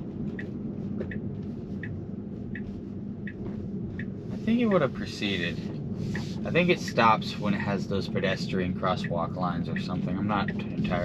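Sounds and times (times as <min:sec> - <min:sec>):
road and tyre rumble in car: 0:00.0 - 0:11.0
turn signal ticking: 0:00.0 - 0:11.0.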